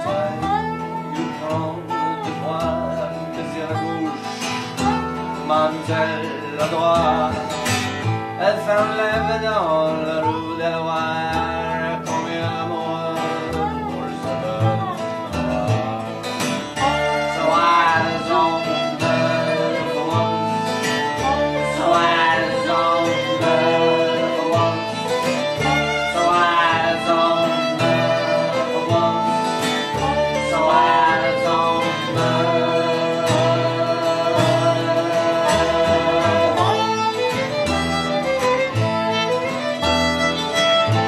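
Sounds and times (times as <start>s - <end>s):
acoustic guitar: 0.0s - 41.0s
dobro sliding melody: 0.0s - 41.0s
fiddle playing a waltz: 0.0s - 41.0s
upright bass: 0.0s - 41.0s.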